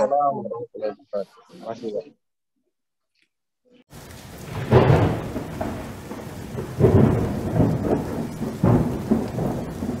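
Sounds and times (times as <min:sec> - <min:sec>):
thunder-like rumbling: 0:03.9 - 0:10.0.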